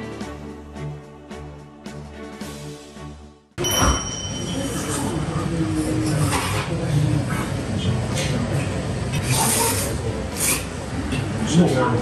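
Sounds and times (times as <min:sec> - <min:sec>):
cutlery clinks: 0:03.6 - 0:05.2.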